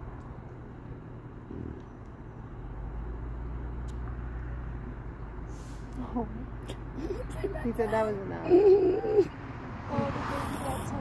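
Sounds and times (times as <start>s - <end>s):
vehicle engine rumbling: 0.0s - 11.0s.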